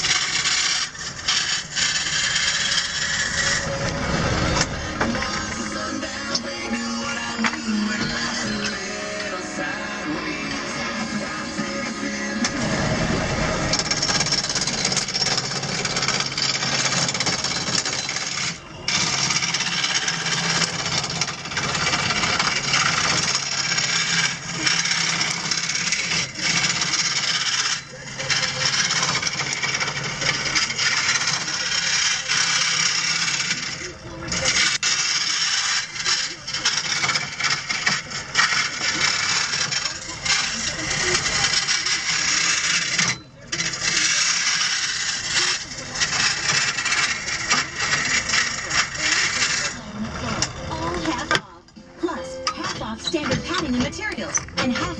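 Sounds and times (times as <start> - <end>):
gouge shaving wood on lathe: 0.0 - 6.4, 11.2 - 50.0
low motor hum: 3.4 - 15.1.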